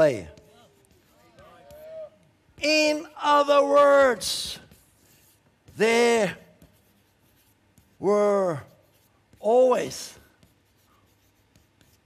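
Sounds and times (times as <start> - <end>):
chalk clicking on board: 0.0 - 3.4, 4.0 - 12.0
chalk scratching on chalkboard: 0.0 - 12.0.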